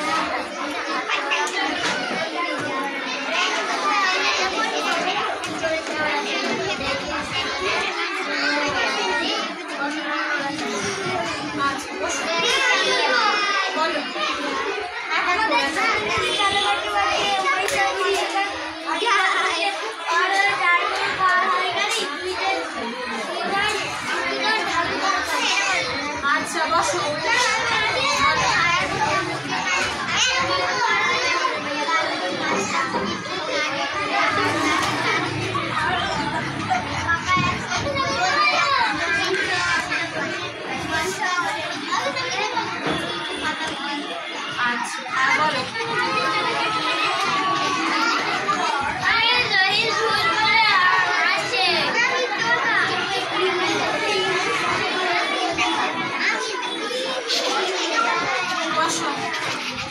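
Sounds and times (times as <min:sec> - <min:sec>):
young children calling out and talking: 0:00.0 - 0:59.9.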